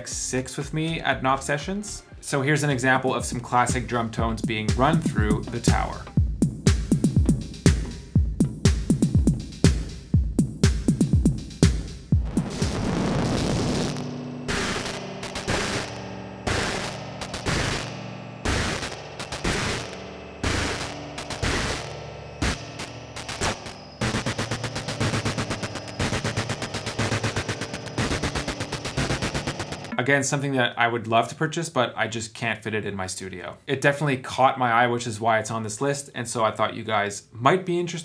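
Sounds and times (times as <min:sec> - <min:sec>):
drum machine hits with spring reverb: 0:03.2 - 0:30.0.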